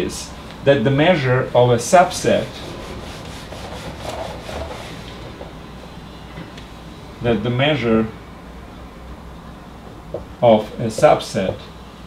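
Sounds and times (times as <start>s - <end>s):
whiteboard being wiped: 2.4s - 5.3s.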